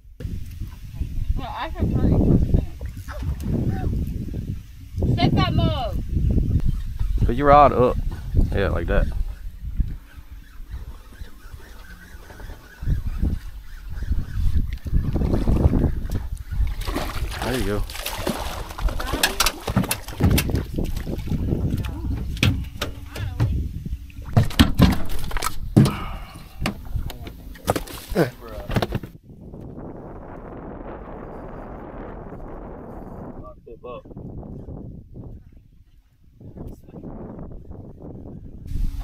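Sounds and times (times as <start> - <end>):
water splashing: 0.3 - 6.0, 7.9 - 29.0
fish knocking in box: 18.0 - 21.2, 21.8 - 23.6, 24.3 - 26.8.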